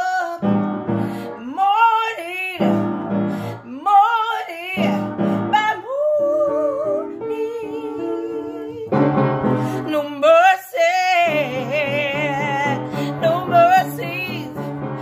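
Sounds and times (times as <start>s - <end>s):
piano chords: 0.0s - 15.0s
woman singing with vibrato: 0.0s - 15.0s.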